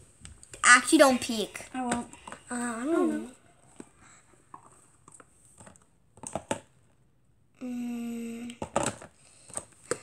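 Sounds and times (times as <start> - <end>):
plastic tubs knocking and scraping: 0.3 - 2.6, 3.7 - 6.9, 8.6 - 10.0.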